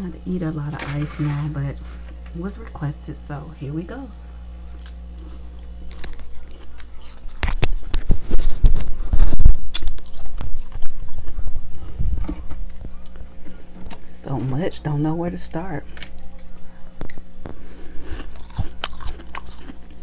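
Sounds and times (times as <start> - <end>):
frost crunching when chewed: 4.7 - 14.6, 15.8 - 20.0.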